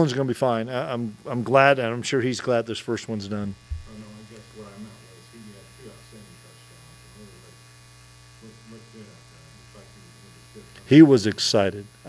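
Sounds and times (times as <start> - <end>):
electrical hum and buzz: 0.0 - 12.0
faint distant speech: 8.4 - 10.8.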